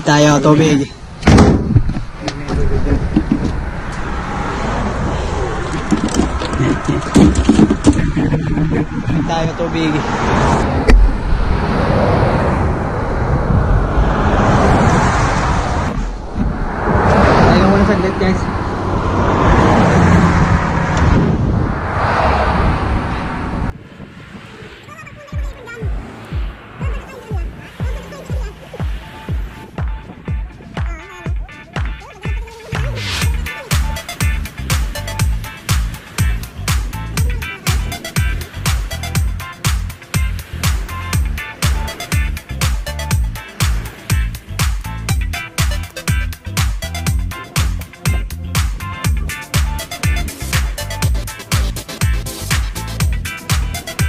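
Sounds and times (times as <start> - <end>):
passing traffic: 0.0 - 54.0
truck road and wind rumble: 0.0 - 54.0
knocks in truck bed: 1.2 - 2.0
music with thumping beat: 25.4 - 54.0.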